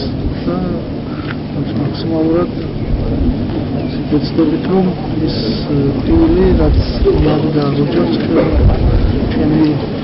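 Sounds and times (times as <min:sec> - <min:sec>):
man speaking: 0:00.0 - 0:00.9, 0:01.6 - 0:02.6, 0:04.0 - 0:09.9.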